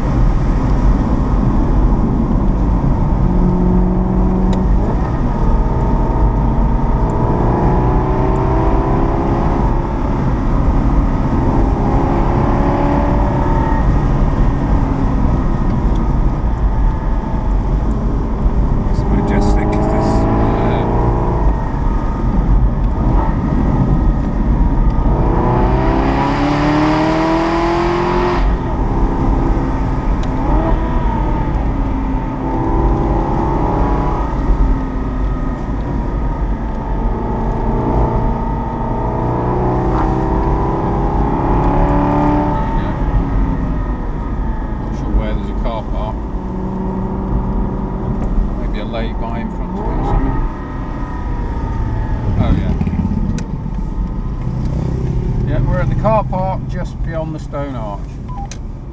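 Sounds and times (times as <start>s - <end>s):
car engine accelerating: 0.0s - 58.9s
road and wind noise: 0.0s - 58.9s.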